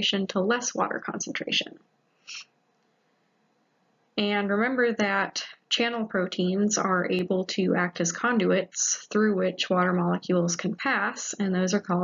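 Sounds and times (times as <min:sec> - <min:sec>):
faint breath: 0:02.1 - 0:02.6.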